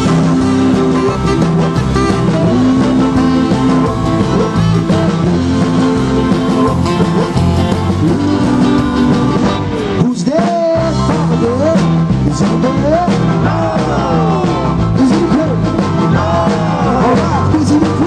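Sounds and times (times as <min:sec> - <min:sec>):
person singing: 0:00.0 - 0:18.0
rock and roll band playing: 0:00.0 - 0:18.0.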